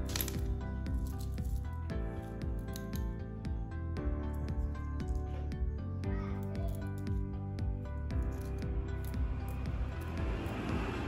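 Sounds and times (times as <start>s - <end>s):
pebbles clinking together: 0.0s - 3.1s
background music: 0.0s - 11.0s.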